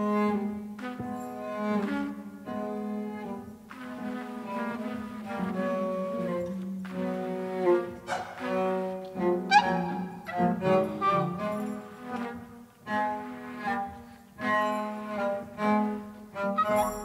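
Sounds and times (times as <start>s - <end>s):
slow cello melody: 0.0s - 17.0s.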